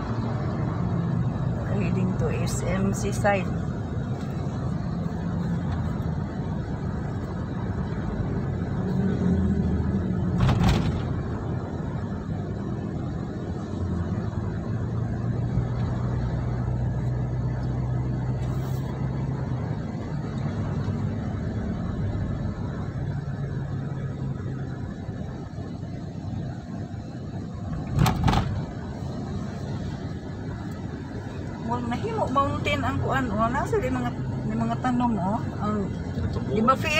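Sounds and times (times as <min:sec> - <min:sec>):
car engine and tyre drone: 0:00.0 - 0:36.9.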